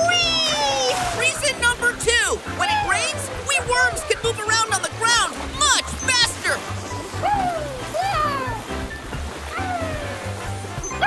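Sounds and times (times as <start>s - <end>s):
cartoon background music: 0.0s - 11.0s
gliding meow-like cries: 9.5s - 10.4s.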